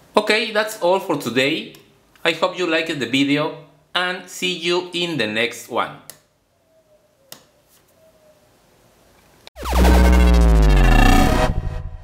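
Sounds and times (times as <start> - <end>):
electronic synthesizer sweep: 9.6 - 12.0.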